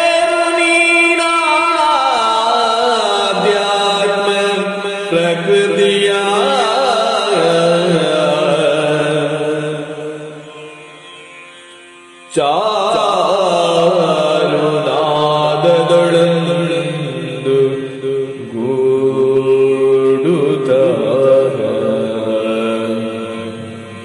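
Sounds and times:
man singing devotional line: 0.0s - 11.3s, 12.3s - 24.0s.

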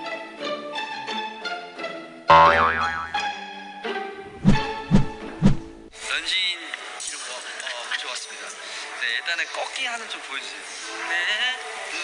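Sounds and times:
light music: 0.0s - 9.6s
cartoon boing sound effect: 2.3s - 3.2s
deep thumps: 4.3s - 5.9s.

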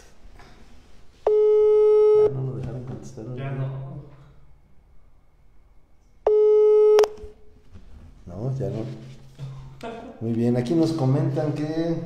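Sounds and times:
low steady hum: 0.0s - 12.0s
telephone beep: 1.3s - 2.3s, 6.3s - 7.3s.

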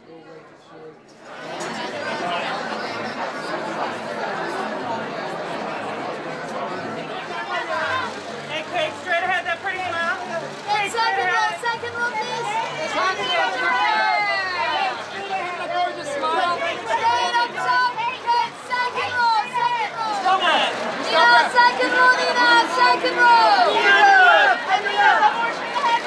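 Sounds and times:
photographers shouting: 10.8s - 26.0s.

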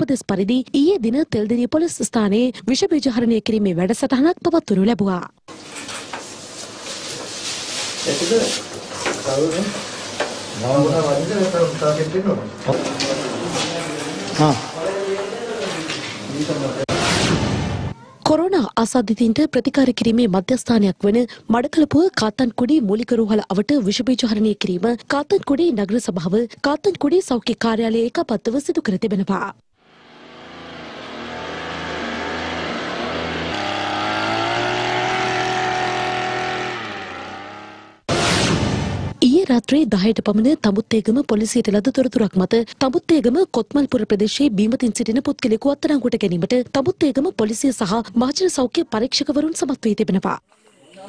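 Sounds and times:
small sprayer engine running: 29.9s - 37.9s.

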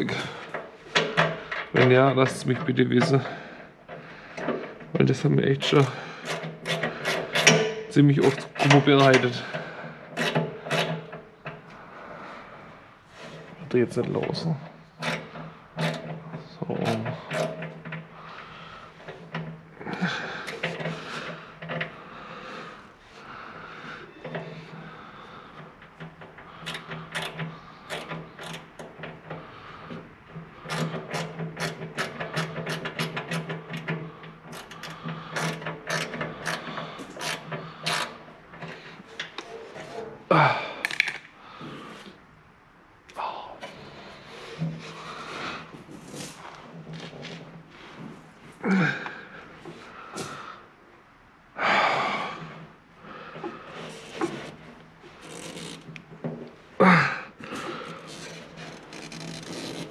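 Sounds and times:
grunt of effort: 40.3s - 40.9s, 48.6s - 49.4s, 56.8s - 58.0s.

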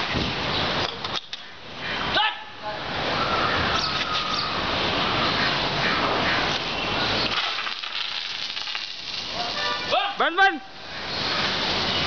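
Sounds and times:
fire hose water jet spraying: 6.5s - 12.0s.

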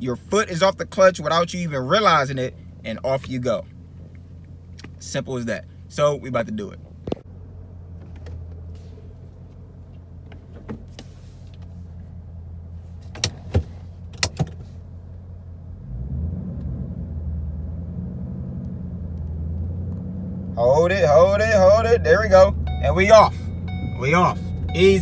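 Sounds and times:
car engine idling and revving: 0.0s - 25.0s.

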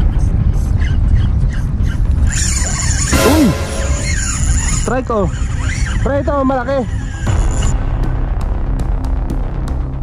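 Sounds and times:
brief high squeal: 2.3s - 4.9s.

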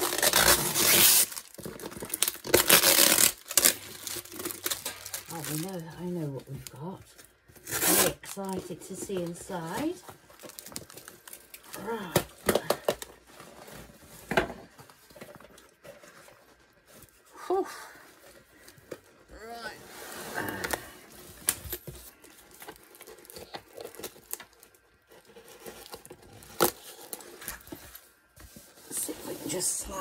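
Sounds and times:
paper and tape tearing and crinkling: 0.0s - 17.2s, 18.2s - 30.0s.

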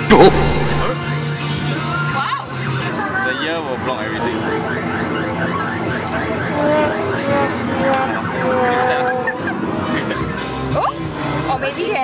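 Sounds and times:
person laughing: 0.0s - 0.9s
electronic arcade music: 0.0s - 1.0s.

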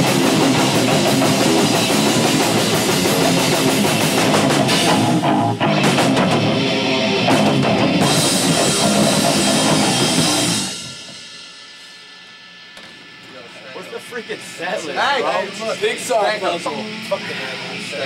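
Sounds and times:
pounding drum kit: 0.0s - 11.8s
distorted electric guitar: 0.0s - 13.3s.

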